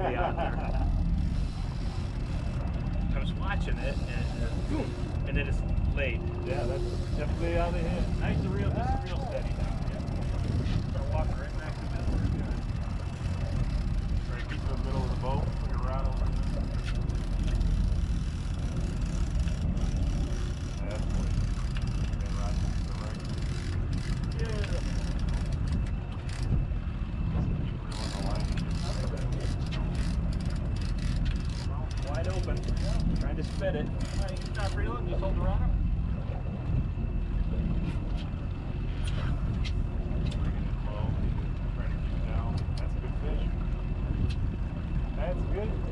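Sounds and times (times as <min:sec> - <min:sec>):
boat engine rumble: 0:00.0 - 0:45.9
water noise: 0:00.0 - 0:45.9
wind: 0:00.0 - 0:45.9.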